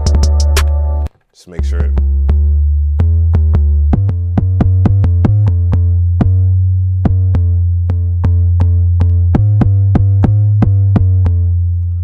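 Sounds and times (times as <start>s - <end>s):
low bass note: 0.0s - 12.0s.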